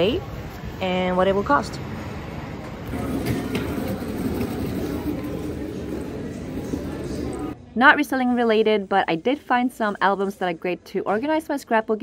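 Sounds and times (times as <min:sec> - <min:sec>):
plastic bin casters rolling on floor: 0:02.9 - 0:07.6.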